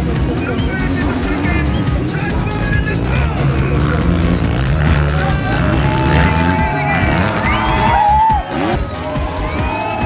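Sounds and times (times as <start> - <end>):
dirt bike engines: 0.0 - 10.0
loud music: 0.0 - 10.0.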